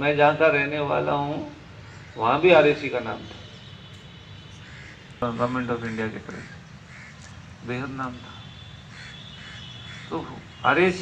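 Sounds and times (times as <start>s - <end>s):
man speaking: 5.2s - 6.6s, 7.6s - 8.5s, 10.1s - 11.0s.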